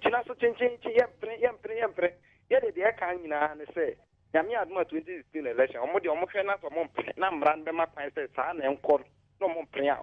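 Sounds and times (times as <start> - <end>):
person talking over a telephone: 0.0 - 10.0.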